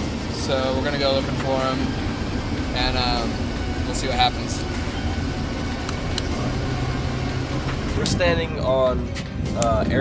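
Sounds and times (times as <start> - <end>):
van engine droning inside cabin: 0.0 - 9.4.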